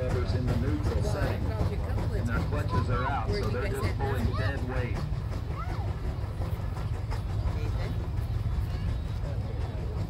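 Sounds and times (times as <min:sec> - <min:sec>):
crowd chatter: 0:00.0 - 0:10.0
steam engine low rumble: 0:00.0 - 0:10.0.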